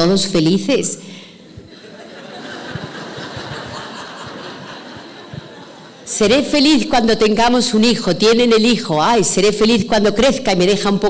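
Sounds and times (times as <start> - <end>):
audience laughing: 1.6 - 6.1.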